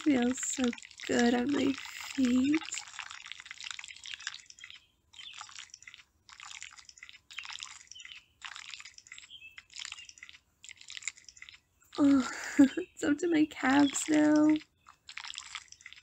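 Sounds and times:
mud squelching underfoot: 0:00.0 - 0:16.0.

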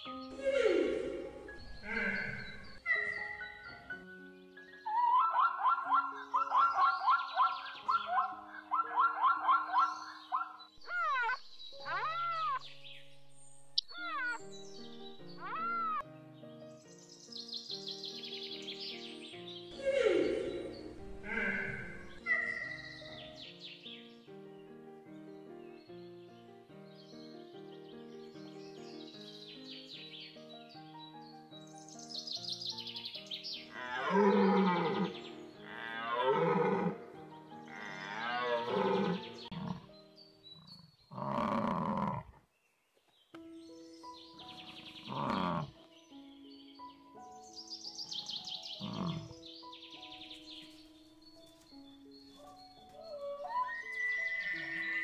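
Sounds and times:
light background music: 0:00.0 - 0:42.1, 0:43.4 - 0:55.0
drawn-out animal calls: 0:00.4 - 0:03.8, 0:04.9 - 0:12.6, 0:13.8 - 0:14.4, 0:15.4 - 0:16.0, 0:19.8 - 0:23.1, 0:33.7 - 0:39.9, 0:45.0 - 0:45.8, 0:48.8 - 0:49.4, 0:53.0 - 0:55.0.

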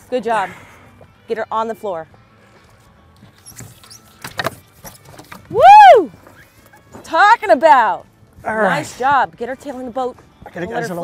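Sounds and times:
brief high squeak: 0:03.4 - 0:04.5.

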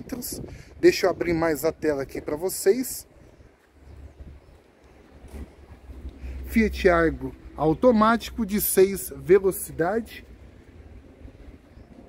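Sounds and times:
wind rumble on microphone: 0:00.0 - 0:08.9, 0:10.2 - 0:12.0.

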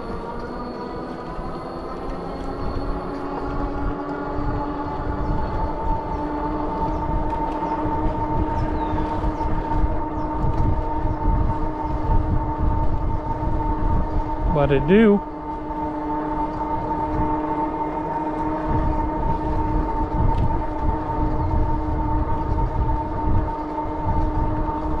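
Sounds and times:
steady multi-tone hum: 0:00.0 - 0:25.0
wind rumble on microphone: 0:00.0 - 0:25.0.

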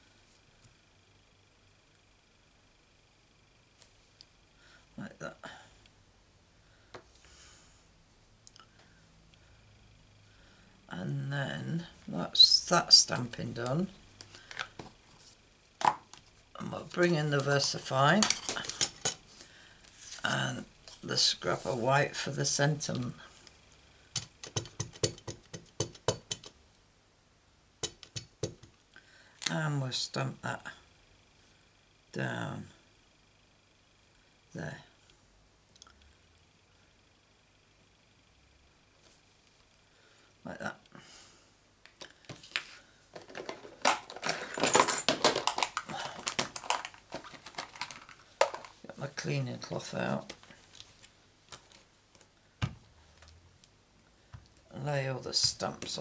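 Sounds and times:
rustling and clicking of craft supplies: 0:13.1 - 0:21.1, 0:24.2 - 0:26.6, 0:41.9 - 0:48.9, 0:50.2 - 0:54.6.

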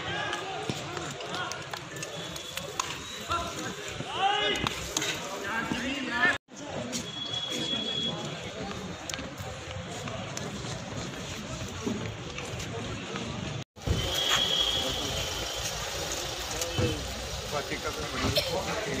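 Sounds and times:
players shouting and calling: 0:00.0 - 0:06.4
umpire's whistle blast: 0:13.9 - 0:15.3.

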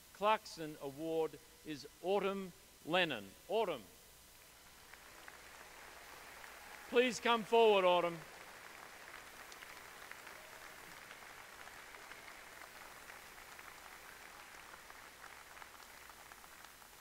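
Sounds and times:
faint crowd applause: 0:04.4 - 0:17.0.

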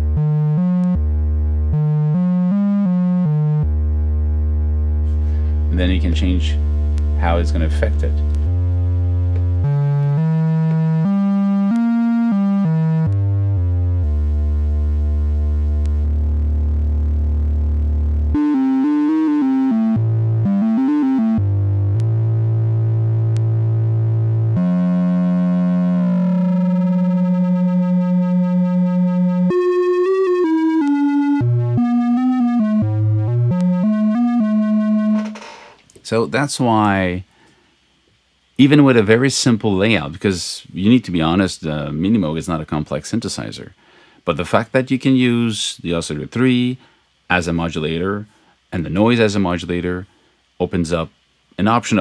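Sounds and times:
synthesizer melody: 0:00.0 - 0:35.5
pulsing synthesizer tone: 0:14.0 - 0:35.4.

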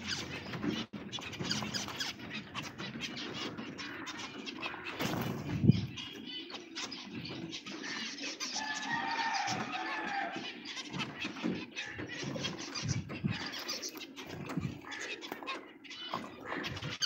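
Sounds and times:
finches chirping: 0:00.0 - 0:17.0.

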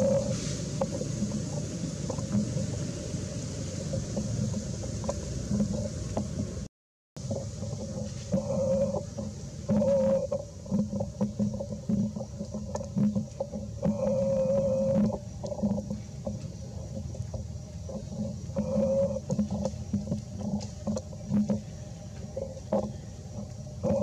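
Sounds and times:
animal hooting: 0:00.0 - 0:02.4, 0:07.9 - 0:16.3, 0:17.8 - 0:24.0.

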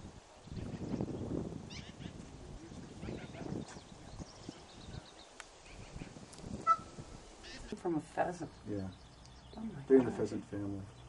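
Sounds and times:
farm animal noises: 0:01.8 - 0:03.9.

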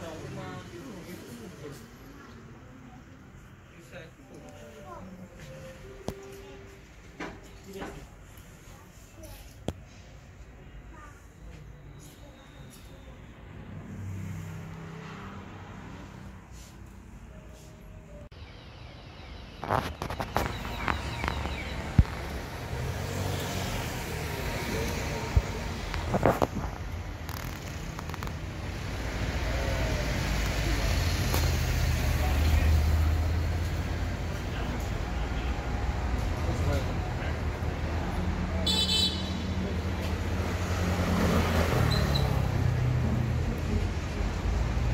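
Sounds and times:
low rumble of road traffic: 0:00.0 - 0:44.9.

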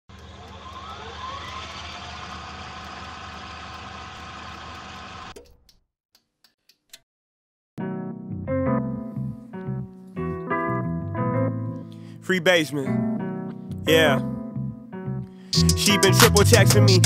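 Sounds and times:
clicks: 0:00.1 - 0:03.9
rising whines: 0:00.1 - 0:05.3
piano music: 0:07.8 - 0:17.0.

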